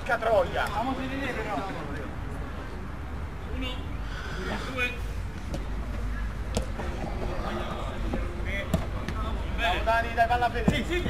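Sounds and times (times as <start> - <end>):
players calling: 3.4 - 11.0
football being kicked: 8.1 - 9.3.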